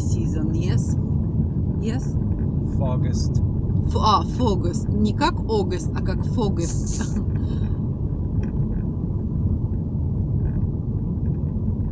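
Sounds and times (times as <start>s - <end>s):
car engine and tyre noise: 0.0s - 4.6s, 5.2s - 11.9s.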